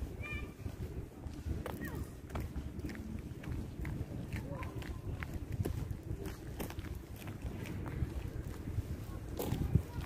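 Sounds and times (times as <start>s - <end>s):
low rumble on microphone: 0.0s - 10.0s.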